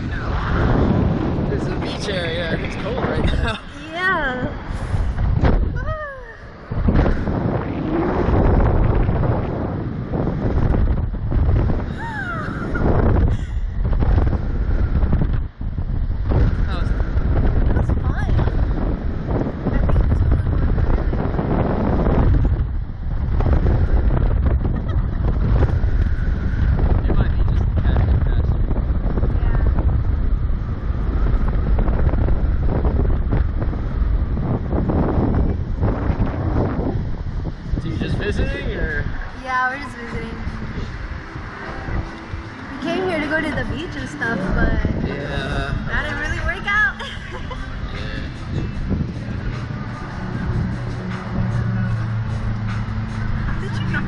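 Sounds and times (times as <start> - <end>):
heavy wind buffeting microphone: 0.0 - 54.0.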